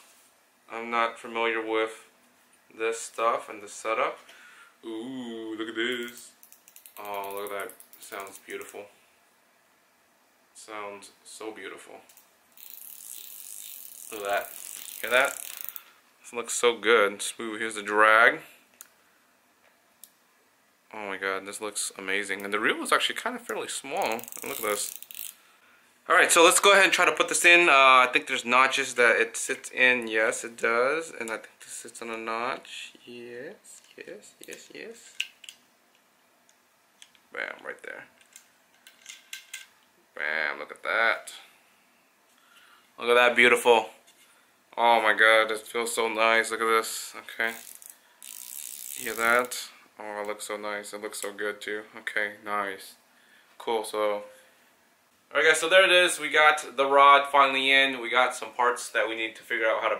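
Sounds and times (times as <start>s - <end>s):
fly reel clicking rapidly: 12.6s - 15.9s, 24.0s - 25.4s, 47.5s - 49.4s.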